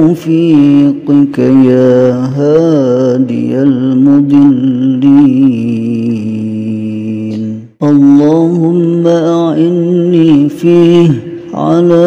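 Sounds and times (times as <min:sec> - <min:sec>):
person chanting a prayer: 0:00.0 - 0:12.0.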